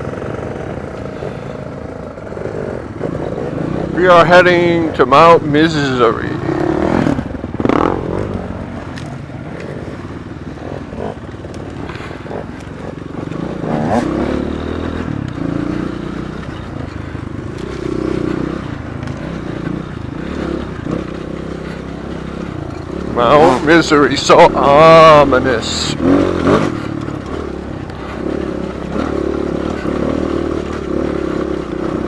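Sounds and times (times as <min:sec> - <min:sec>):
dirt bike engines revving: 0:00.0 - 0:32.0.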